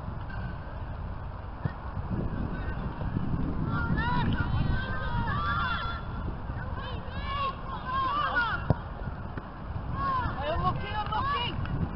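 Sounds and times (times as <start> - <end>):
wind rumbling on microphone: 0.0 - 11.9.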